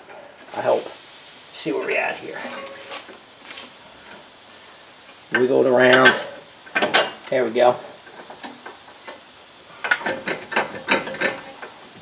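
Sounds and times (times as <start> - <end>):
metal tools clinking: 2.4 - 3.2.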